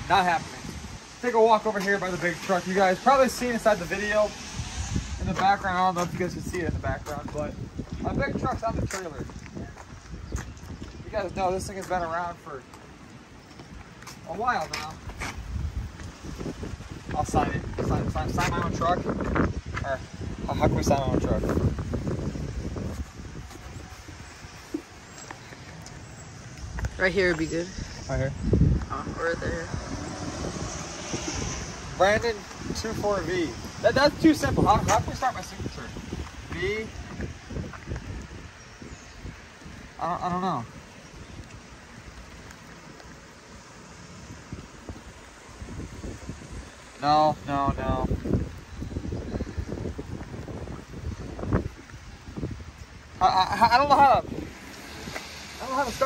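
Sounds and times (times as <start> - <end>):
wind noise on microphone: 0.0 - 56.0.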